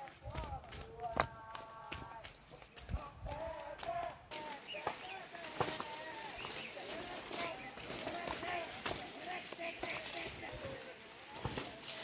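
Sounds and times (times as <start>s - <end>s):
footsteps on dirt path: 0.0s - 12.0s
person's voice: 0.0s - 12.0s.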